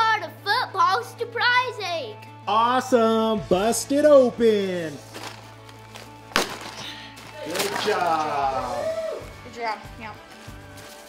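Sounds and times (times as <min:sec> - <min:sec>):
quiet background music: 0:00.0 - 0:11.0
paper egg cracking open: 0:05.2 - 0:08.4.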